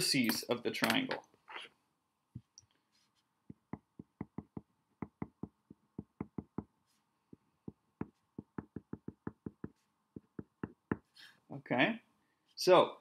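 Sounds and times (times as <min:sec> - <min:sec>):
marker tapping on paper: 0:03.4 - 0:11.2.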